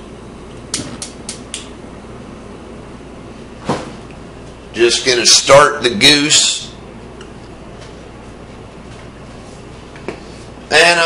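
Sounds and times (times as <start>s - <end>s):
steady low hum: 0.0s - 11.0s
gas burner lighting: 0.5s - 1.8s
gas stove igniter clicking: 0.7s - 1.7s.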